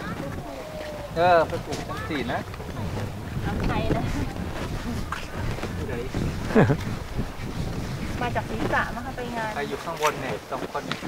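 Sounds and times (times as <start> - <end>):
faint voices: 0.0 - 11.0
wind buffeting microphone: 0.0 - 11.0.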